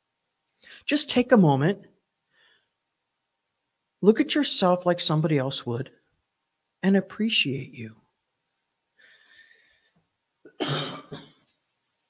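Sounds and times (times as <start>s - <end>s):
woman coughing: 10.5s - 11.4s.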